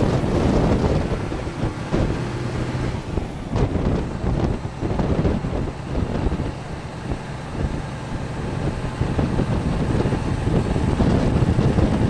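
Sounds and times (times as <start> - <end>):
engine and road noise: 0.0 - 12.0
wind buffeting microphone: 0.0 - 12.0.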